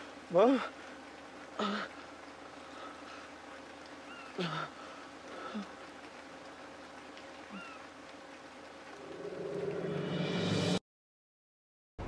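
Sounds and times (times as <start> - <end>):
insect-like drone: 8.3 - 10.8.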